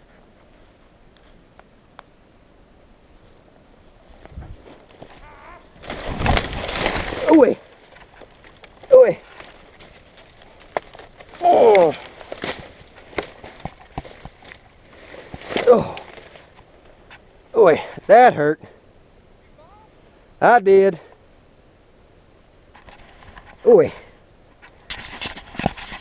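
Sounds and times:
dead branches cracking: 4.1 - 17.2
twigs snapping and rustling: 4.2 - 17.2
brush crashing: 4.6 - 16.6
man grunting and groaning: 11.3 - 12.1, 15.6 - 16.1.

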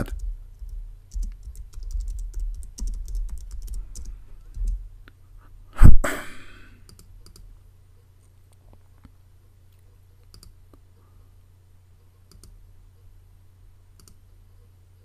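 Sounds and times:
low electrical hum: 0.0 - 15.0
computer mouse clicks: 6.9 - 7.5, 10.2 - 10.8, 12.3 - 12.6, 14.0 - 14.2.

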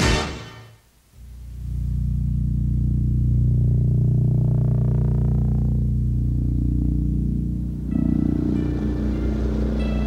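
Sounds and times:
high whine rising in pitch: 1.2 - 10.0.

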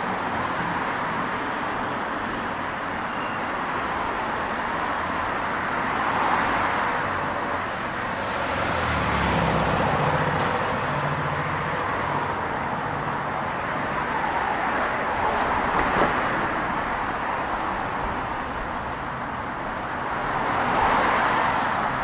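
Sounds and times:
city traffic noise: 0.0 - 22.0
passing vehicle engine hum: 8.2 - 13.2.

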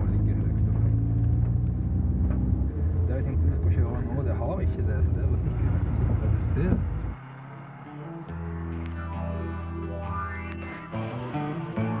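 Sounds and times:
car engine hum: 0.0 - 12.0
road noise: 0.0 - 12.0.

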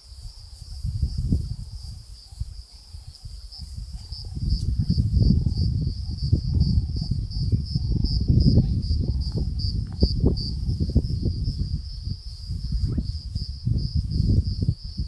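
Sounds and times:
insect chorus trilling: 0.0 - 15.0.

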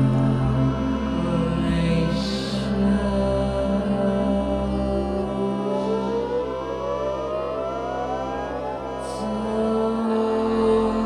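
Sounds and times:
steady low drone: 0.0 - 11.0
theremin gliding upward: 0.0 - 11.0.

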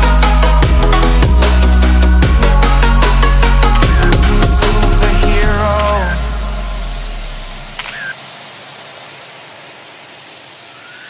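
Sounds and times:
backing music bass note: 3.7 - 7.8
soft hiss: 4.6 - 11.0
camera shutter click: 5.8 - 6.1, 7.8 - 8.2.

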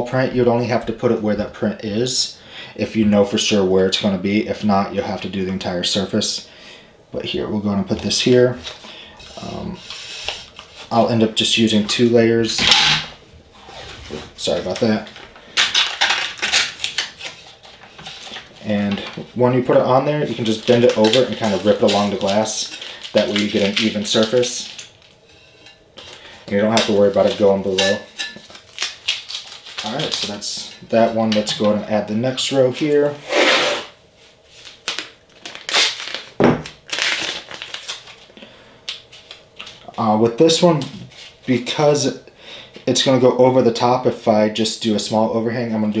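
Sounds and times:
tape crackling and rustling: 7.9 - 12.8, 13.5 - 33.2, 33.8 - 41.6
tape ripping off roll: 34.6 - 38.2.

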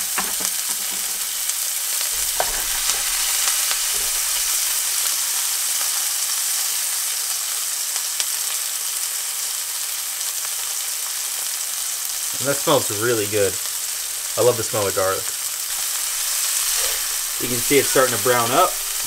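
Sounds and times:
onion sizzling in hot oil: 0.0 - 19.0.

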